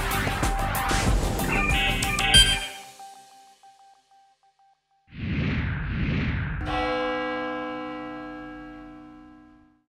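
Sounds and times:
bell-like chord ringing: 2.4 - 3.0.

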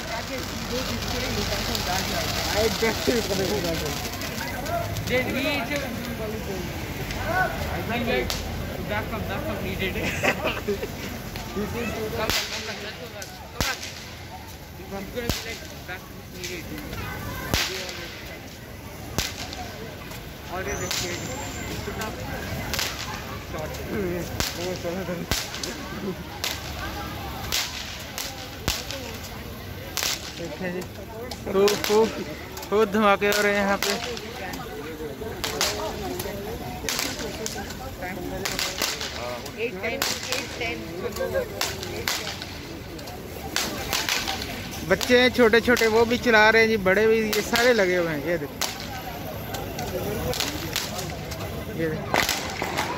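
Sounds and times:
crowd voices: 0.0 - 52.9
firecrackers cracking: 0.0 - 52.9
street background noise: 0.0 - 52.9
firecracker bang: 11.3 - 14.6, 16.4 - 19.9, 20.6 - 30.6, 35.3 - 40.8, 52.0 - 52.9.

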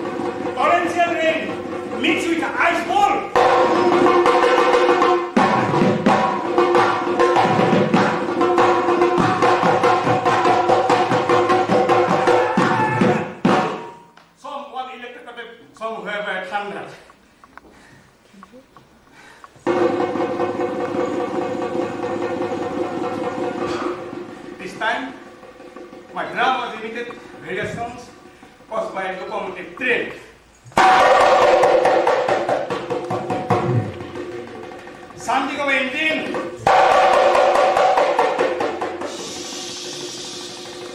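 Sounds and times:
barrel drums played fast: 0.0 - 13.9, 19.6 - 29.0, 30.8 - 40.9.

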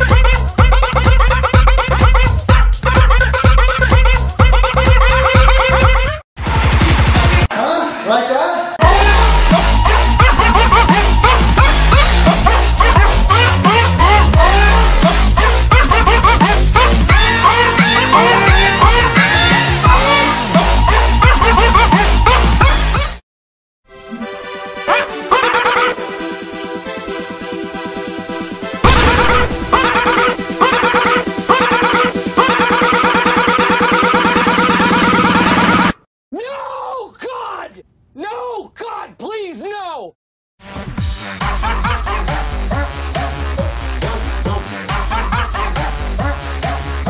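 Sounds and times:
kick drum and bass beat: 0.0 - 6.1, 8.8 - 17.9, 18.5 - 23.0
pitched dog bark melody: 0.0 - 6.2, 8.8 - 23.2, 24.1 - 26.3, 28.8 - 35.8.

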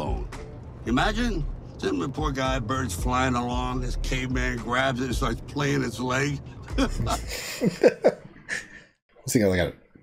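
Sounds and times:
person laughing: 6.5 - 8.9.

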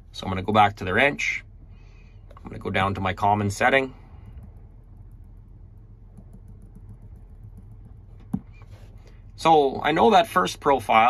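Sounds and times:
low steady hum: 0.0 - 11.0
finger tapping touchscreen: 4.4 - 8.7.

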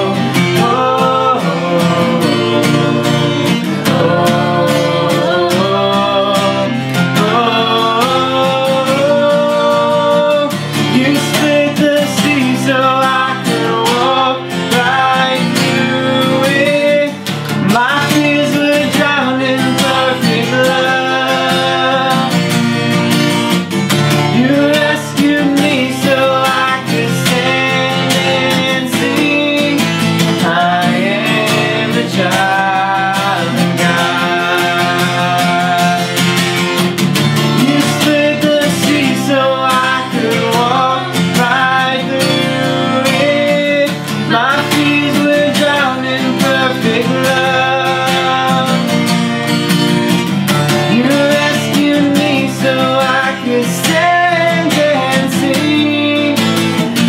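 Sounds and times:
man and woman singing: 0.0 - 22.8, 24.1 - 49.4, 50.6 - 57.0
strummed acoustic guitar: 0.0 - 57.0.

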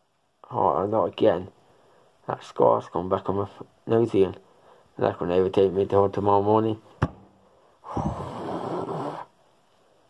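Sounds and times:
person breathing noisily: 7.4 - 9.4.

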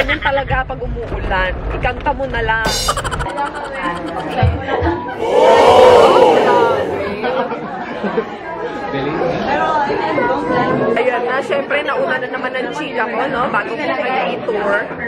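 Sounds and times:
indistinct chatter: 3.3 - 8.7.

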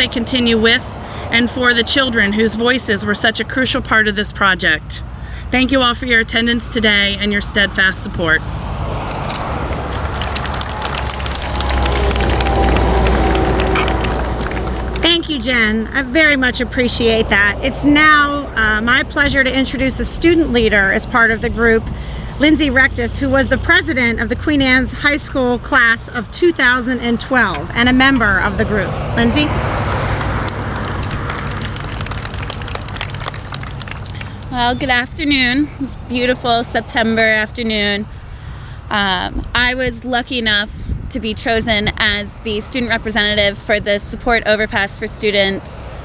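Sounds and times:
car passing: 0.0 - 38.9, 45.0 - 46.0
road traffic rumble: 0.0 - 46.0
audience applauding: 9.3 - 15.1, 29.9 - 34.4.

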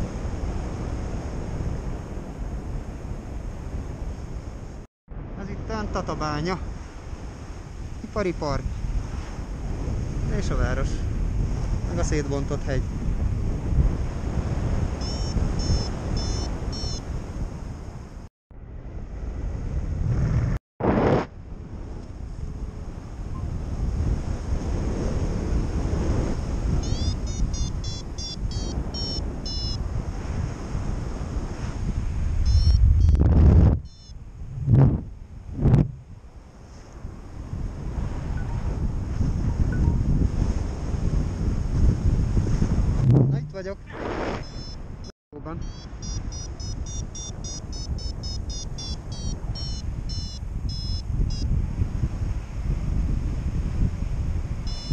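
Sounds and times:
wind rushing over microphone: 0.0 - 54.9.

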